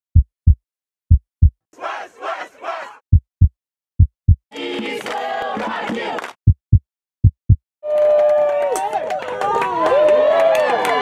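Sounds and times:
deep heartbeat-style thumps: 0.1 - 1.6, 3.1 - 4.5, 6.4 - 7.6
group of voices shouting: 1.8 - 3.0.

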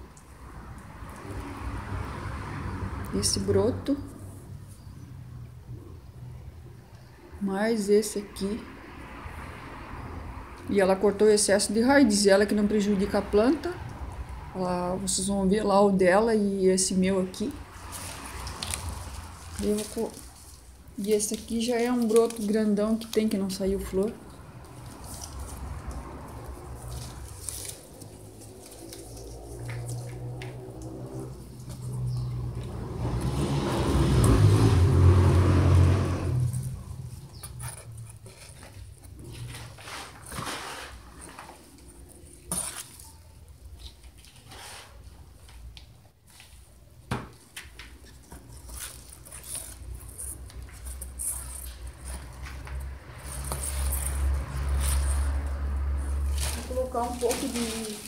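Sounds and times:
hands potting plant rustling: 17.4 - 35.4, 36.2 - 58.0.

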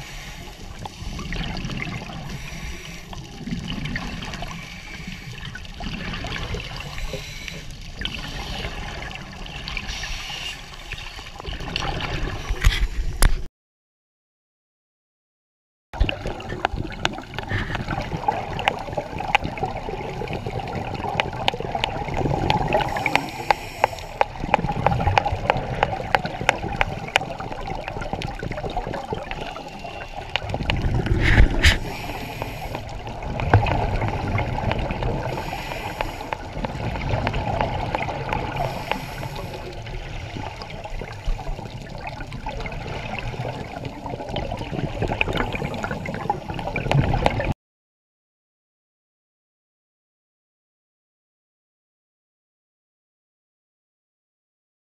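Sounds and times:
scuba regulator breathing: 0.0 - 1.5, 2.1 - 3.4, 4.4 - 5.7, 6.8 - 9.0, 9.8 - 11.1, 22.6 - 24.4, 29.4 - 33.2, 35.1 - 36.8, 38.5 - 40.7
exhaled bubbles rushing: 0.0 - 13.3, 16.0 - 47.5
watery wash: 0.0 - 13.5, 16.0 - 47.6
crackle of small clicks: 16.0 - 19.7, 20.9 - 39.8.

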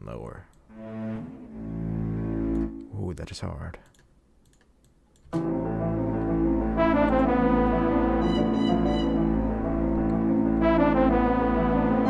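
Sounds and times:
faint clicks: 3.8 - 5.3.

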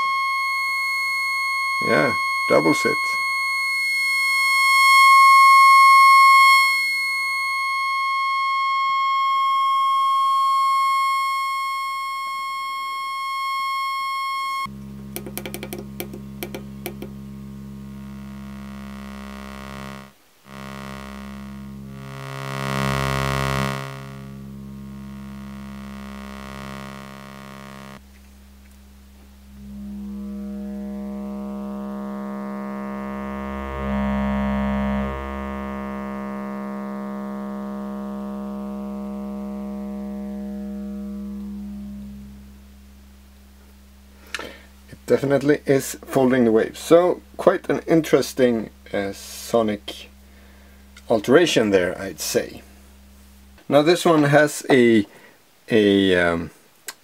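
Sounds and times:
buzzing synthesizer tone: 0.0 - 55.4.

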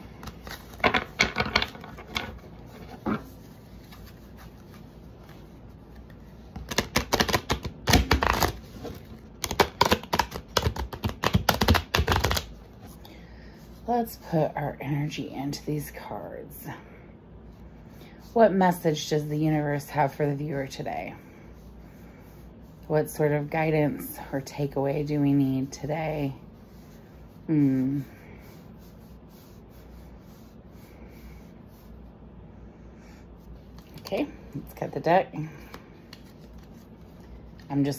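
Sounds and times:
cards being shuffled: 0.0 - 12.9, 35.6 - 37.7
low steady hum: 0.0 - 37.9.

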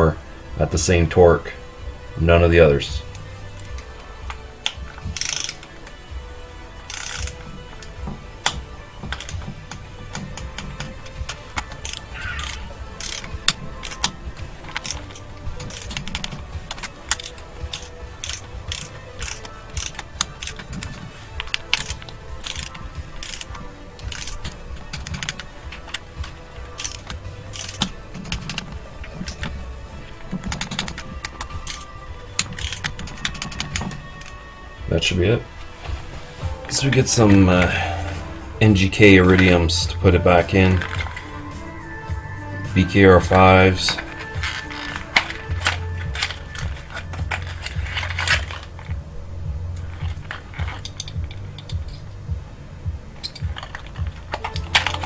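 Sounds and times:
socket wrench ratcheting: 4.7 - 5.7, 6.9 - 7.4, 8.4 - 29.6, 30.4 - 34.4, 40.7 - 41.3, 43.8 - 49.0.

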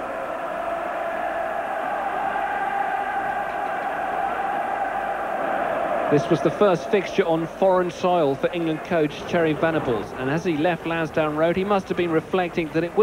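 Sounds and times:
stadium crowd din: 0.0 - 13.0.

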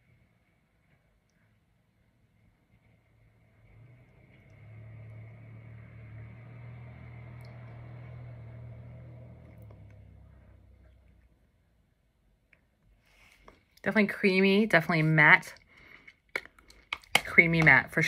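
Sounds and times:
engine hum passing by: 2.8 - 11.6.

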